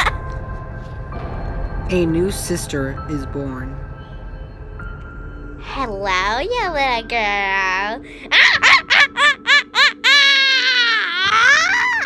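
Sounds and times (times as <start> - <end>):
girl laughing high-pitched: 0.0 - 0.2, 8.3 - 12.0.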